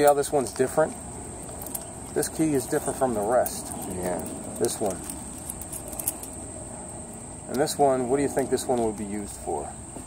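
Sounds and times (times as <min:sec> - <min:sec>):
keys jingling clicks: 0:00.0 - 0:06.4
high-pitched insect trill: 0:00.0 - 0:10.0.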